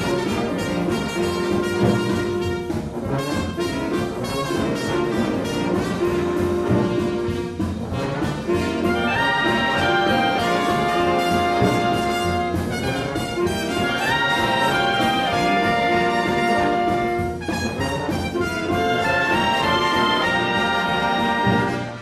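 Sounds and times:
concert wind band playing: 0.0s - 22.0s
trumpet: 0.0s - 22.0s.

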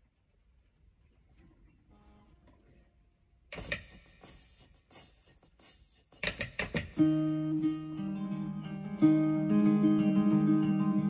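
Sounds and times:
acoustic guitar strumming: 7.0s - 11.0s.

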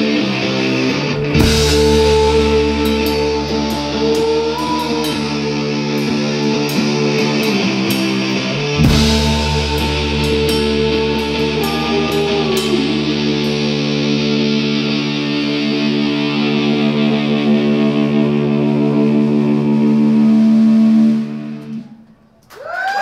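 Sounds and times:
distorted electric guitar chord: 0.0s - 21.9s
crowd cheering: 0.0s - 23.0s.

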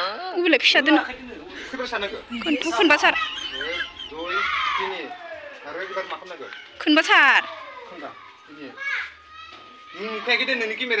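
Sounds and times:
children talking and calling out: 0.7s - 11.0s.

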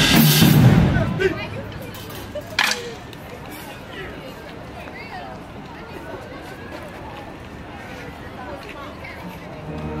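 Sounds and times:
outdoor background noise: 0.0s - 10.0s
faint chatter of voices: 0.8s - 10.0s.

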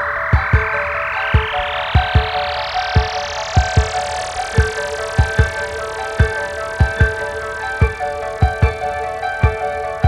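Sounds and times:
held keyboard notes: 0.0s - 10.0s
rising noise sweep: 0.0s - 10.0s.

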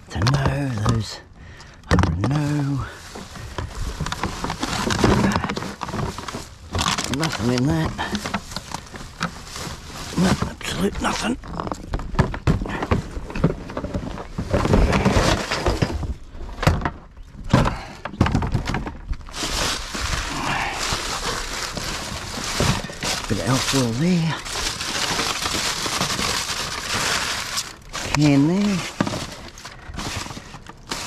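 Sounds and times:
man's voice: 0.0s - 1.3s, 1.9s - 3.0s, 7.0s - 8.2s, 10.2s - 11.4s, 23.1s - 24.5s, 28.0s - 29.0s
plastic bags rustling: 2.1s - 16.4s, 17.6s - 31.0s.

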